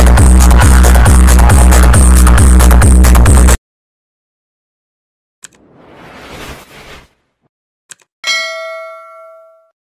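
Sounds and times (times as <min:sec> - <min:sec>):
notification bell ding: 0:08.2 - 0:09.8.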